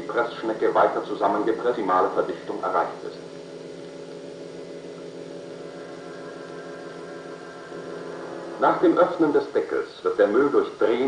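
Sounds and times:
steady electrical hum: 0.0 - 11.0.

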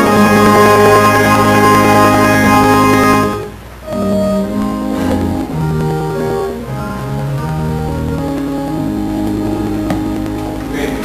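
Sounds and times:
organ playing held chords: 0.0 - 11.0.

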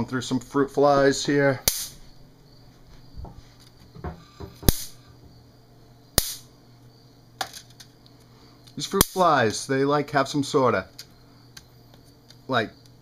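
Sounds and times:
bug zapper racket snapping: 1.6 - 2.0, 4.6 - 5.0, 6.2 - 6.5, 8.7 - 9.3.

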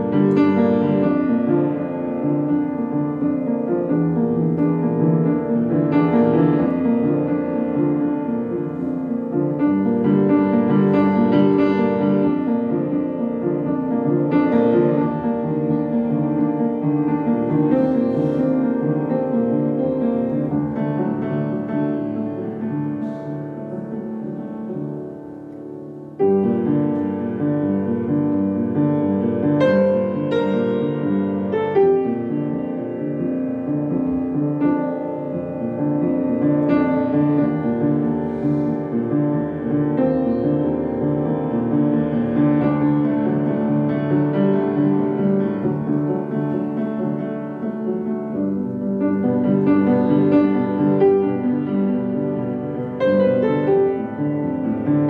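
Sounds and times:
solo piano chords and melody: 0.0 - 55.0.

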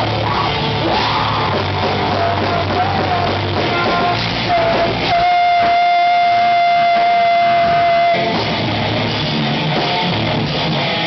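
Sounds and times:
shouted vocals: 0.0 - 8.4
live rock band playing: 0.0 - 11.0
held high note: 5.0 - 8.6.

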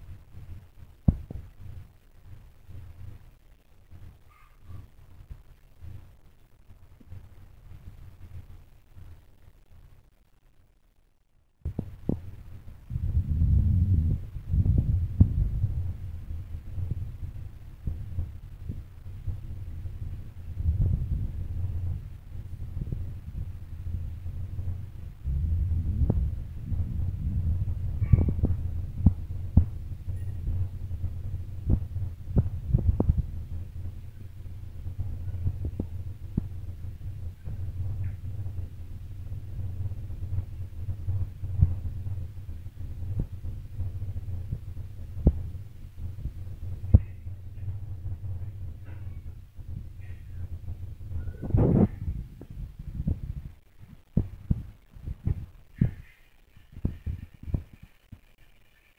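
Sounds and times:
low steady hum: 0.0 - 58.9.

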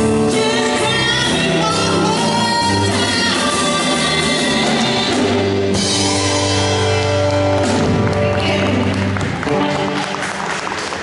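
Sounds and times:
rock band holding a chord: 0.0 - 11.0
hand-clapping: 7.2 - 11.0.

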